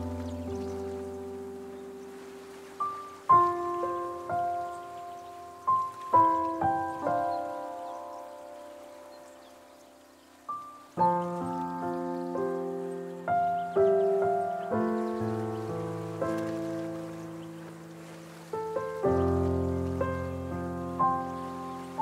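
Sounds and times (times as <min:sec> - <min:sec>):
slow solo piano: 0:00.0 - 0:22.0.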